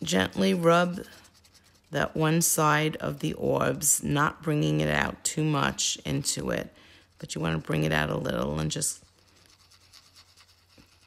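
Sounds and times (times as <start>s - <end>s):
paper rubbing on graphite: 0.0s - 2.6s, 6.2s - 11.0s.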